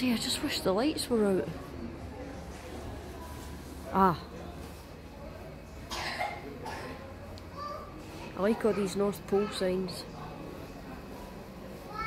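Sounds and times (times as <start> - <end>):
person coughing: 5.9 - 7.0.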